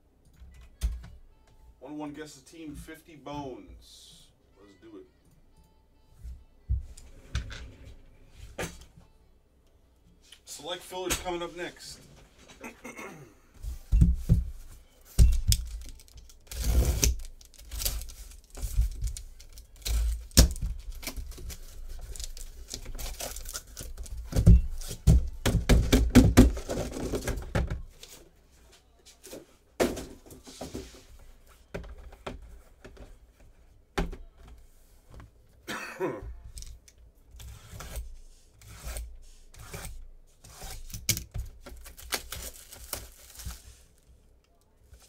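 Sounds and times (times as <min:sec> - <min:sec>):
cardboard tearing and scraping: 0:15.8 - 0:25.0, 0:37.6 - 0:43.6
cardboard box thunks: 0:24.3 - 0:27.7.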